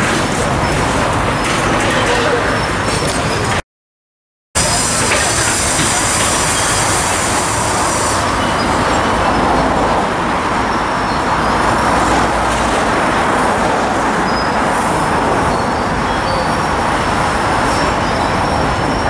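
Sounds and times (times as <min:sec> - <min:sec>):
loud machine noise: 0:00.0 - 0:03.6, 0:04.6 - 0:19.0.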